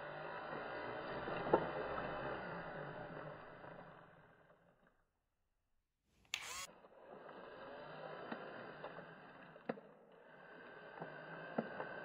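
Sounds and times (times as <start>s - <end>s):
toy electric motor whirring: 6.3s - 6.7s.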